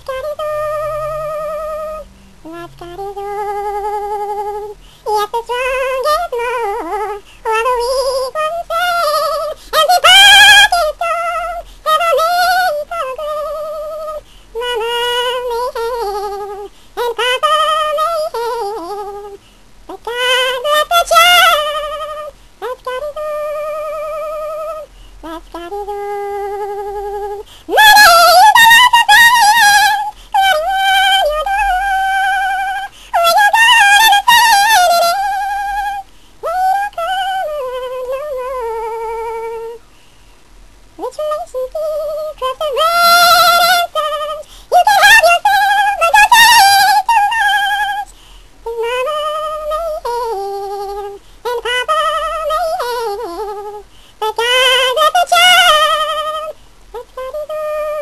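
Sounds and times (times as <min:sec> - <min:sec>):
woman singing with vibrato: 0:00.0 - 0:39.9, 0:41.0 - 0:58.0
short breaths: 0:04.8 - 0:05.1, 0:39.8 - 0:40.6, 0:44.4 - 0:44.7, 0:48.1 - 0:48.6, 0:53.9 - 0:54.2.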